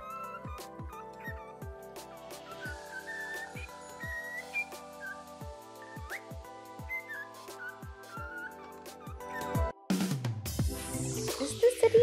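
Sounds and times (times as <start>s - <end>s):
cockatiel whistling: 0.0s - 9.7s
music with sustained tones: 0.0s - 9.8s.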